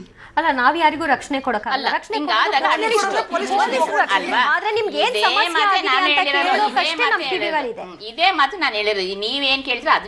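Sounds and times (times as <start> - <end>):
voices arguing over one another: 2.2 - 8.0.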